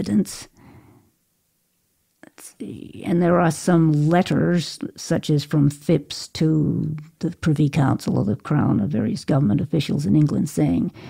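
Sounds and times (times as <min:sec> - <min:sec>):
person speaking: 0:00.0 - 0:00.5, 0:02.2 - 0:11.0.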